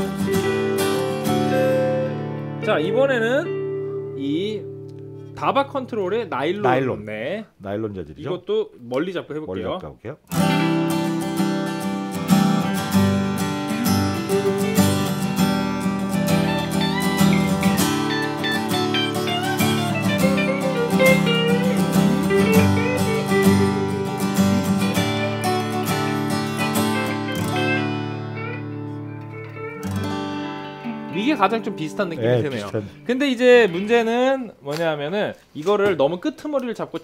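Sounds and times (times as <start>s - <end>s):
acoustic guitar strumming: 0.0s - 7.0s, 10.3s - 34.2s.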